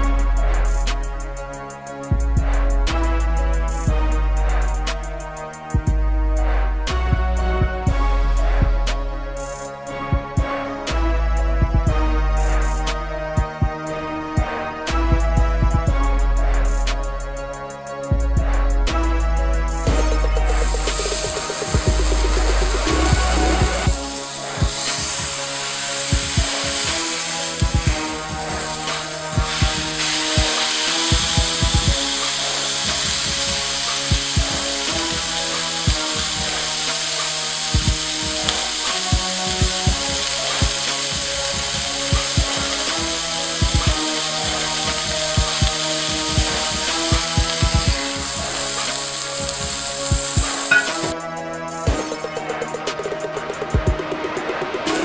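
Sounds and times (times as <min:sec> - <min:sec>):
background music with drum beat: 0:00.0 - 0:55.0
meat sizzling in a skillet: 0:20.0 - 0:51.2.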